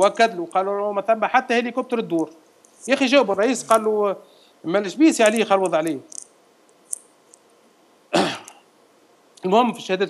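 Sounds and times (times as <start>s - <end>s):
throat-clearing cough: 8.1s - 8.6s.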